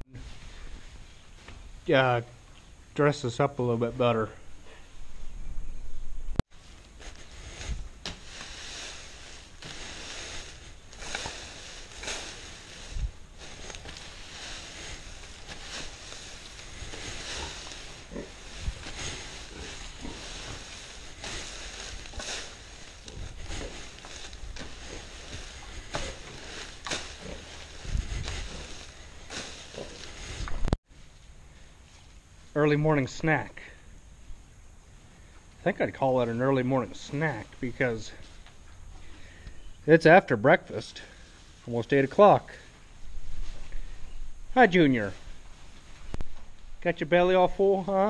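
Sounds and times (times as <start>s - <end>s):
dry fodder rustling and crackling: 6.5s - 33.4s, 40.7s - 48.0s.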